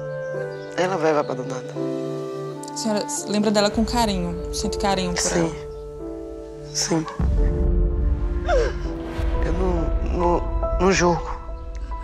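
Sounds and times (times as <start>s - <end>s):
soft background music: 0.0s - 12.0s
low rumble: 7.2s - 12.0s
woman crying: 8.4s - 8.9s.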